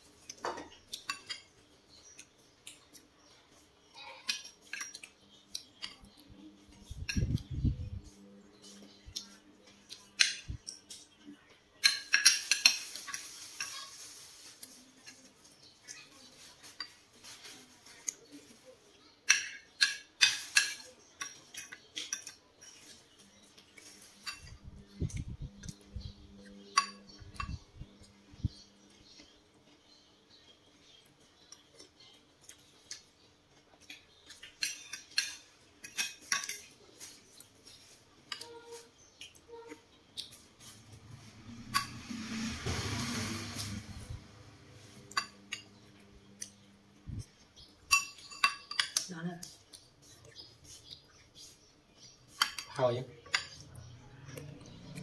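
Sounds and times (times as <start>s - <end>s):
cutlery scraping a plate: 4.2s - 5.2s, 11.8s - 14.0s, 19.2s - 23.1s, 23.7s - 24.9s, 26.4s - 27.6s, 33.9s - 43.9s, 47.6s - 51.0s, 52.0s - 55.0s
cutlery clinking on a plate: 11.8s - 13.9s, 19.2s - 22.4s, 26.6s - 27.6s, 33.9s - 37.2s, 47.9s - 49.1s, 52.3s - 53.9s.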